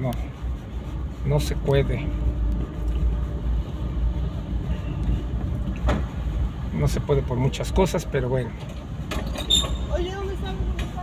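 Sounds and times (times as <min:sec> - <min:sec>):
car engine and road rumble: 0:00.0 - 0:11.0
brief high squeak: 0:09.3 - 0:09.9.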